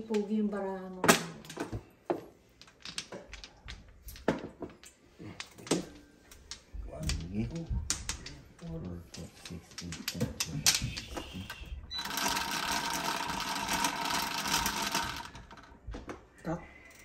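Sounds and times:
mahjong tiles clacking on table: 1.1 - 16.3.

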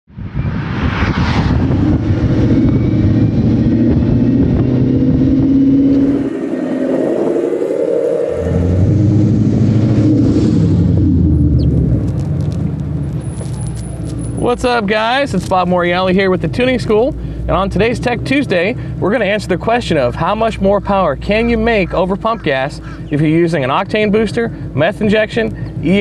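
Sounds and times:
car engine rumbling while driving: 1.6 - 7.6, 8.5 - 26.0.

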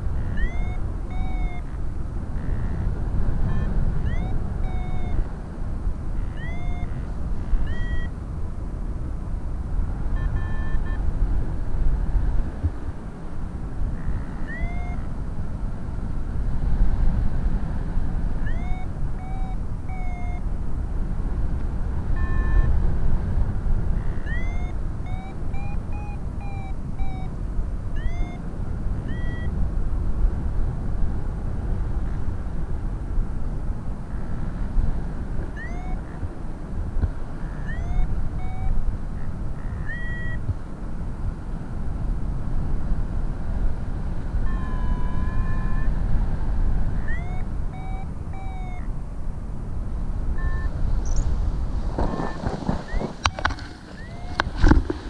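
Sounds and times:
variometer electronic beeps: 0.0 - 1.8, 2.4 - 5.4, 6.2 - 8.2, 10.1 - 11.1, 14.0 - 15.1, 18.4 - 20.5, 22.1 - 22.8, 23.9 - 27.4, 28.0 - 29.6, 35.5 - 36.4, 37.4 - 40.5, 44.3 - 46.0, 46.9 - 48.9, 50.3 - 51.3, 52.0 - 54.8
wind buffeting microphone: 0.0 - 55.0.

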